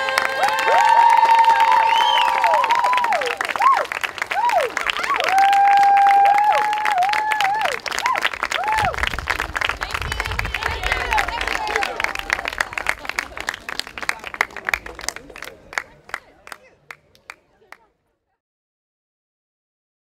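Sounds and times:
person whooping: 0:00.0 - 0:09.1
audience applauding and cheering: 0:00.0 - 0:17.3.

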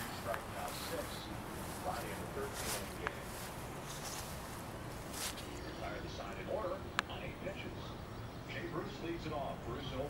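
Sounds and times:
steady low rumble: 0:00.0 - 0:08.3
faint crowd and voices: 0:00.0 - 0:10.0.

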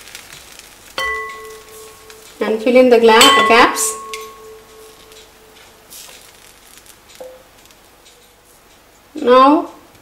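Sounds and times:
metallic ringing tone: 0:01.0 - 0:05.6.

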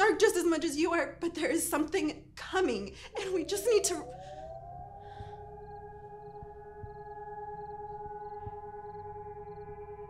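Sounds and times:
civil defence siren: 0:03.2 - 0:10.0.

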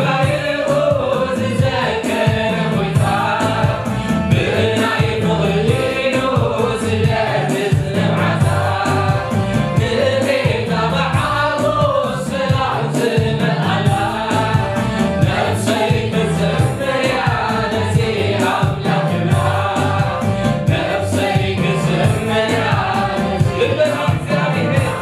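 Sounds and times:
amplified instrumental backing: 0:00.0 - 0:25.0
choir singing worship song: 0:00.0 - 0:25.0
male lead singer: 0:20.7 - 0:25.0.

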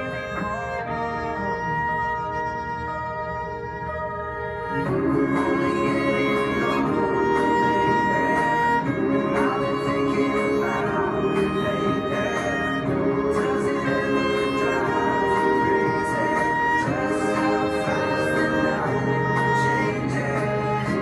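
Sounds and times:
pop song backing track: 0:00.0 - 0:21.0
solo violin: 0:00.0 - 0:21.0.

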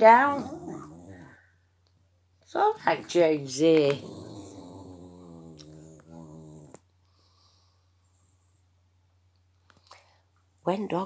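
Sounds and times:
dog growling low: 0:00.0 - 0:01.5, 0:02.7 - 0:06.9.

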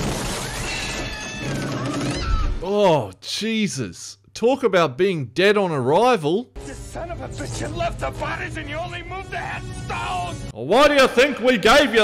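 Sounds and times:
man speaking: 0:02.6 - 0:12.0.

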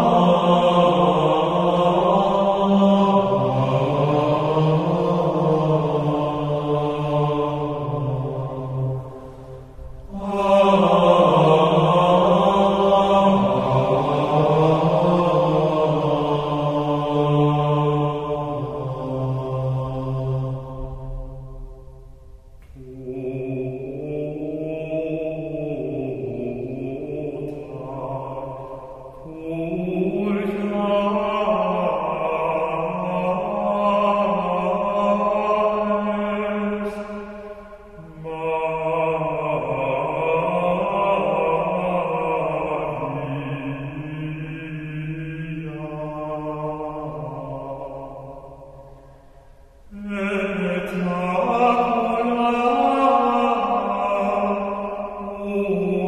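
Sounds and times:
voices chanting in unison: 0:00.0 - 0:21.4, 0:22.7 - 0:56.0.

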